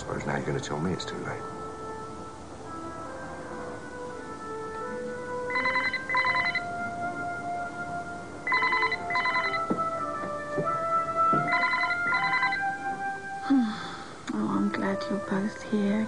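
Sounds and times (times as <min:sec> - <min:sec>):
soft background music: 0:00.0 - 0:16.0
telephone double ring: 0:05.5 - 0:06.6, 0:08.5 - 0:09.7, 0:11.5 - 0:12.7.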